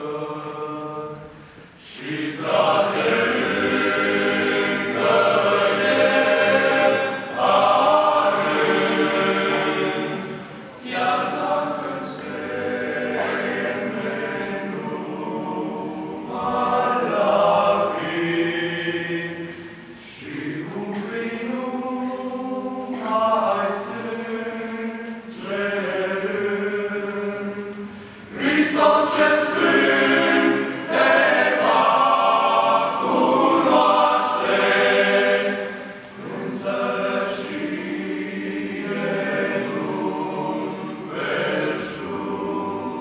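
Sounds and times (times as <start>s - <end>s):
male choir singing a hymn: 0.0s - 43.0s.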